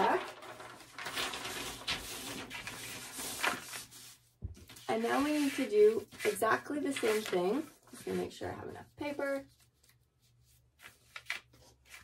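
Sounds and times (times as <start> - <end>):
paper rustling and crinkling: 0.0 - 8.6, 9.2 - 12.0.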